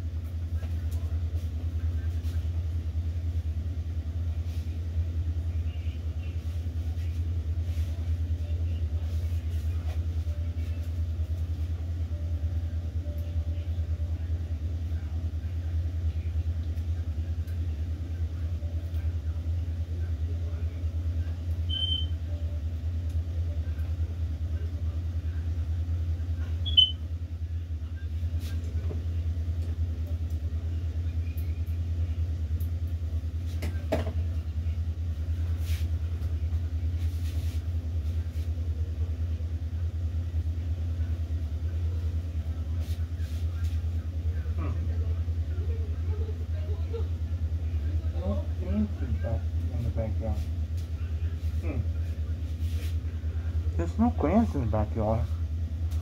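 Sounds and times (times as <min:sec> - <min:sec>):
low room hum: 0:00.0 - 0:56.0.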